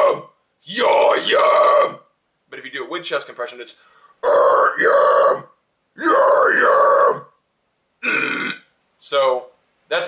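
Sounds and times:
man's raspy death-metal scream: 0.0s - 2.1s, 4.2s - 7.4s.

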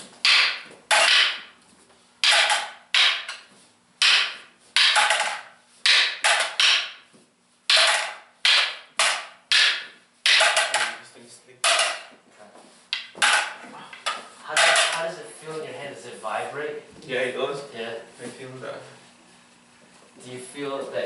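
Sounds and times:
sticks clacking together: 0.2s - 1.5s, 2.2s - 7.1s, 7.7s - 11.0s, 11.6s - 12.1s, 12.9s - 15.1s.

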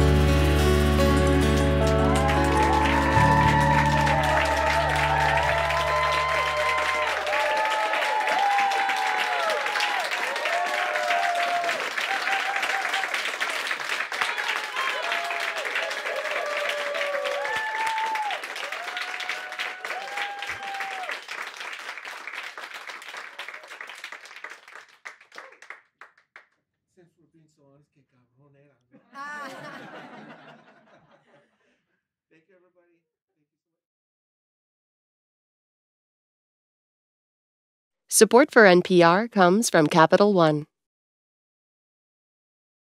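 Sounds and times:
audience applauding and cheering: 0.0s - 25.8s.

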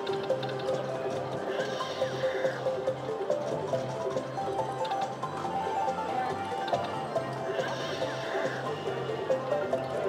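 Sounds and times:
slot machine bonus music: 0.0s - 10.0s.

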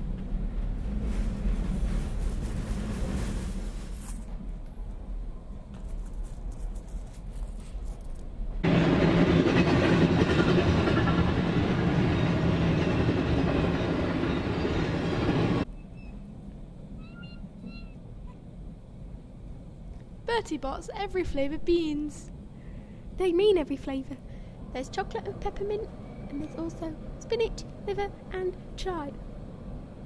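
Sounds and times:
passenger train running past: 0.0s - 5.6s, 8.5s - 15.7s, 23.1s - 30.0s.

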